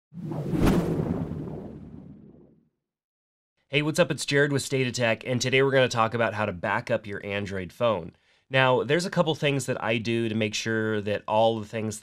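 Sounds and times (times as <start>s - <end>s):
whoosh: 0.1s - 2.6s.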